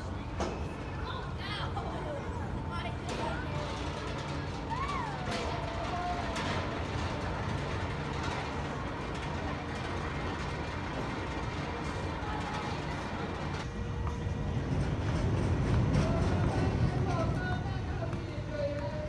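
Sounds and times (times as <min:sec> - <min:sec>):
roller coaster wheels rumbling on track: 0:00.0 - 0:19.0.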